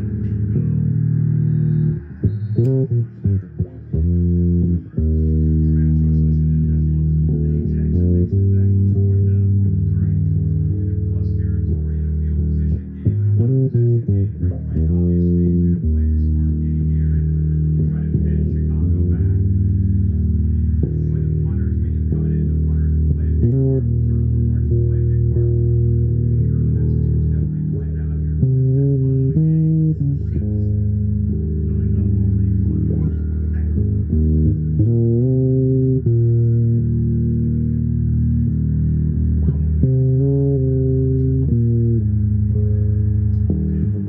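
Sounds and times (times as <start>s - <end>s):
fretless bass sliding notes: 0.0s - 44.0s.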